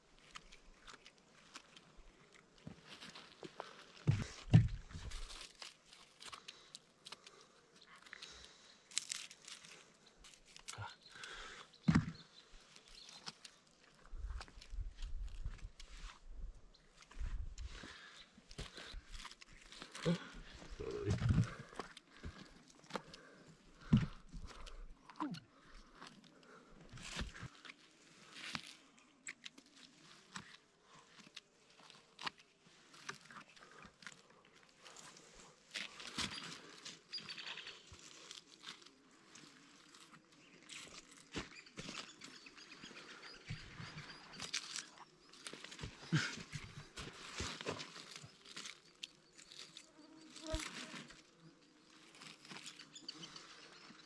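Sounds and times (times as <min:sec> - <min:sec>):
rustling and crackling of leaf litter: 0:05.1 - 0:06.8, 0:08.9 - 0:10.8.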